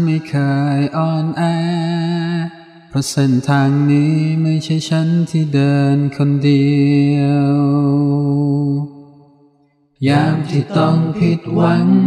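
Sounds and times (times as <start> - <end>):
person singing a long note: 10.0 - 12.0.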